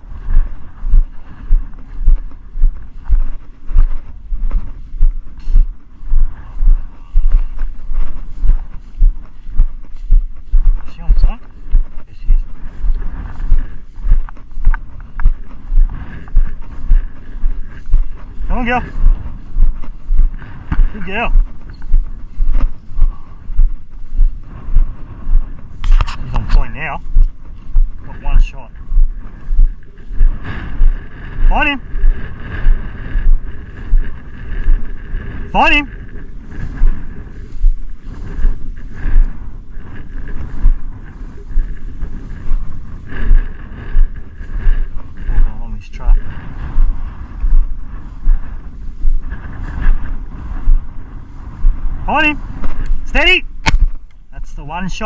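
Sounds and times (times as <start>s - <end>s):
footsteps in dry grass: 0.0s - 55.0s
wind buffeting microphone: 0.0s - 55.0s.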